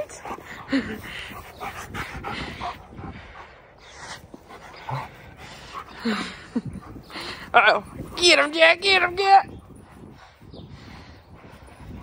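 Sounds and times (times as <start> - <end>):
dog breathy play noises: 0.0 - 12.0.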